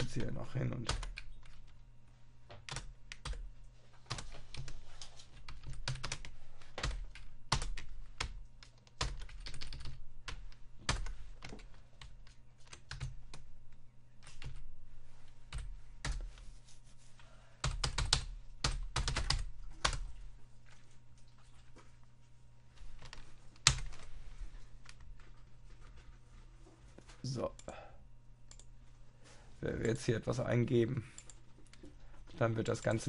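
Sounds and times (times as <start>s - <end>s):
faint low hum: 0.0s - 33.0s
typing on computer keyboard: 0.9s - 1.8s, 2.6s - 3.5s, 4.1s - 13.4s, 17.6s - 20.0s, 23.0s - 24.0s.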